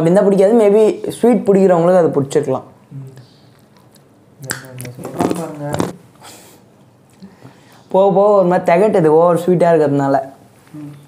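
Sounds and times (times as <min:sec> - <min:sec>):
person humming: 0:10.7 - 0:11.0.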